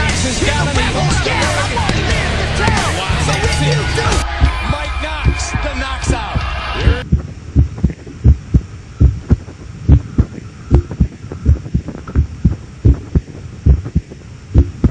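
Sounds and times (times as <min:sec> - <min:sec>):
rock music: 0:00.0 - 0:07.0
heartbeat-like thumping: 0:04.1 - 0:14.9.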